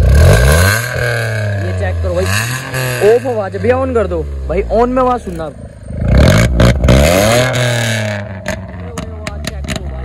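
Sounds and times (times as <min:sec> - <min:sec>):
car engine revving and idling: 0:00.0 - 0:10.0.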